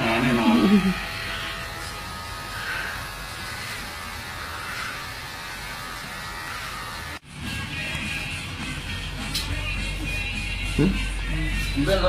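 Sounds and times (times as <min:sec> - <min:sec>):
electric hair trimmer buzzing: 0:00.0 - 0:09.5.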